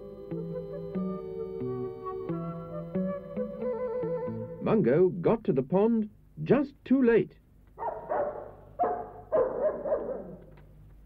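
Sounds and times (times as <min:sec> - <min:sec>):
cartoon dog barking: 0:07.8 - 0:10.5.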